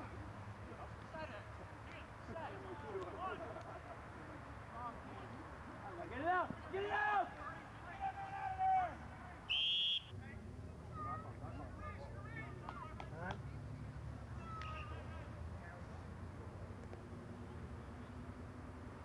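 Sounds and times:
players shouting: 6.0s - 10.1s
referee whistle blast: 9.5s - 10.1s.

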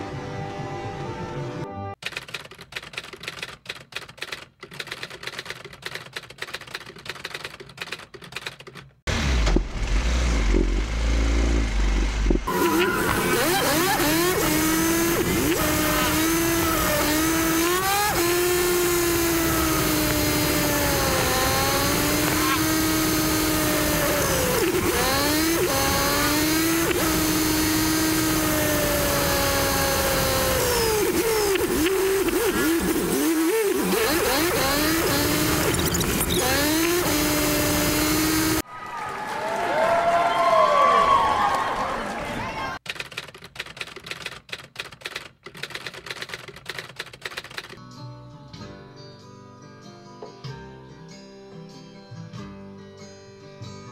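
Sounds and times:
motorcycle engine revving: 9.1s - 38.6s.

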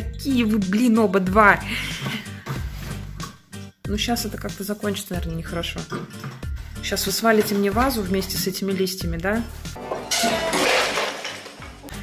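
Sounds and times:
background music: 0.0s - 12.0s
glass shattering: 9.8s - 12.0s.

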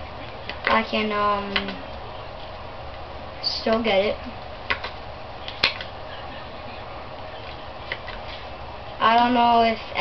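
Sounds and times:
playing cards clicking: 1.5s - 1.8s, 4.7s - 5.9s, 7.4s - 8.5s.

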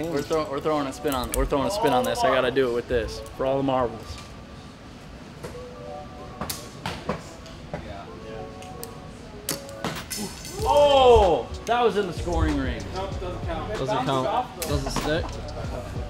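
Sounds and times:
person exclaiming oh: 10.5s - 11.4s.

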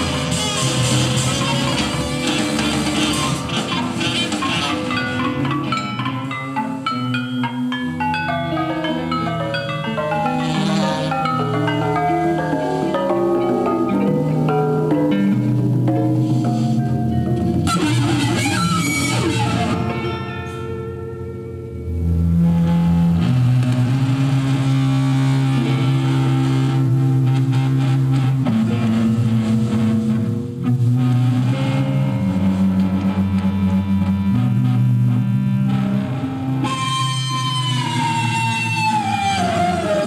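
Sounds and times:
guitar: 0.0s - 40.0s
high note sliding downward: 0.0s - 40.0s
live band instrumental music: 0.0s - 40.0s.

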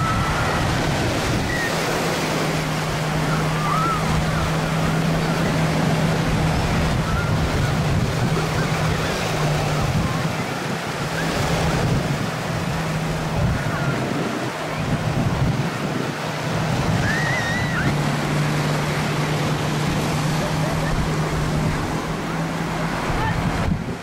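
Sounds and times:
small waves breaking on sand: 0.0s - 24.0s
wind buffeting microphone: 0.0s - 24.0s.

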